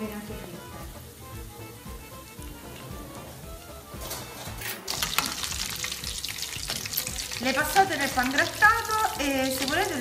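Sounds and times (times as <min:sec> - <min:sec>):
background music: 0:00.0 - 0:10.0
meatballs sizzling in hot oil: 0:00.0 - 0:10.0.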